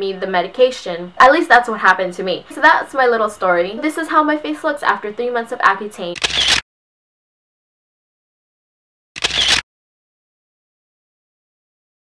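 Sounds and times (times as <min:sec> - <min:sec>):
camera shutter click: 0:06.2 - 0:06.6, 0:09.2 - 0:09.6.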